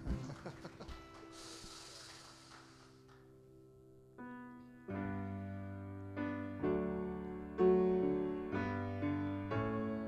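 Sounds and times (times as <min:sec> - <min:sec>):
brief high hiss: 0:01.3 - 0:03.0.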